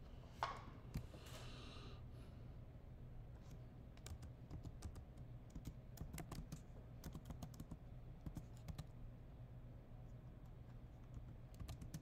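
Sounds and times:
faint keyboard typing: 3.4s - 9.0s, 10.4s - 12.0s.

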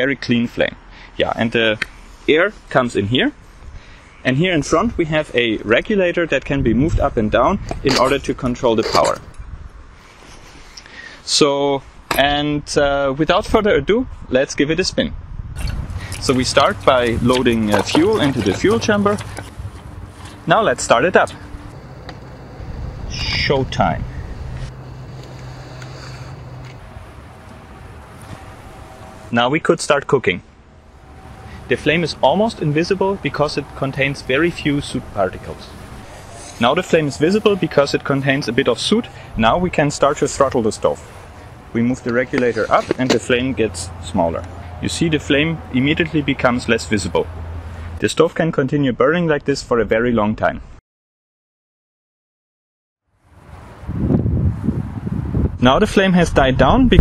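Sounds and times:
wind rumble on microphone: 4.6s - 10.7s, 11.9s - 29.3s, 30.9s - 48.0s, 53.3s - 57.0s
steady low hum: 15.4s - 48.0s.

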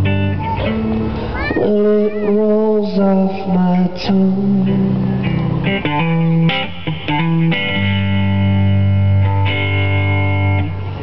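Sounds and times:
guitar chords: 0.0s - 11.0s.

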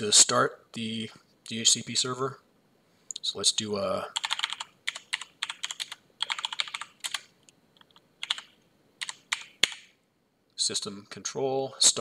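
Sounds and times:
computer keyboard typing: 4.2s - 9.9s.

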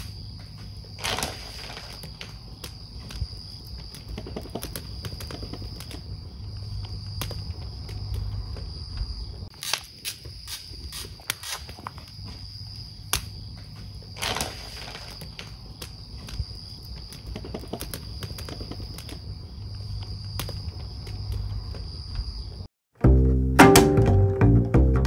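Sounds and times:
sharp pops of fire: 0.0s - 21.7s
wood fire crackling: 0.0s - 22.2s.

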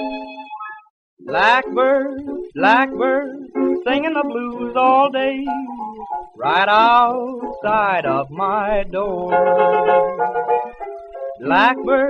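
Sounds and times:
plucked-string accompaniment: 0.0s - 12.0s.

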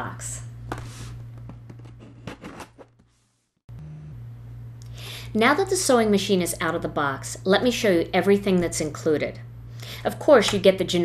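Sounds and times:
low electrical hum: 0.0s - 3.0s, 3.7s - 11.0s.

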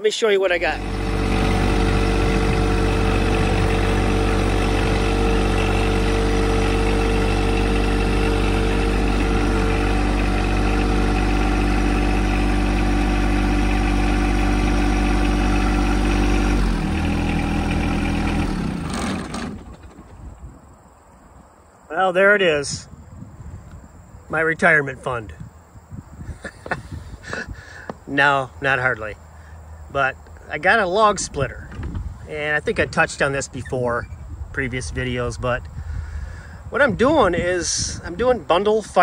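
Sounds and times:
tractor engine running: 0.0s - 20.6s.

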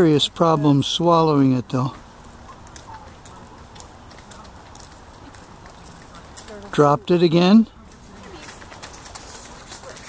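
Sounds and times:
faint clicks: 2.4s - 6.7s.

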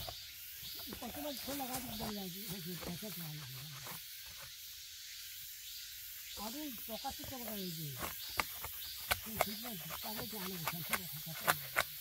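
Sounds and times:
steady high hiss: 0.0s - 9.0s.

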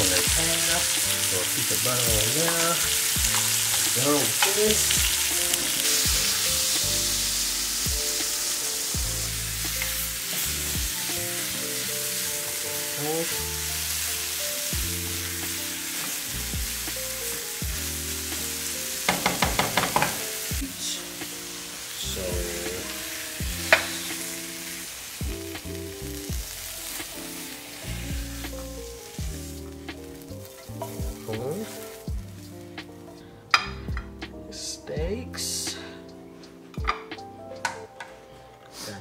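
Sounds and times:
vegetables sizzling in skillet: 0.0s - 33.8s
background music: 0.0s - 39.0s.

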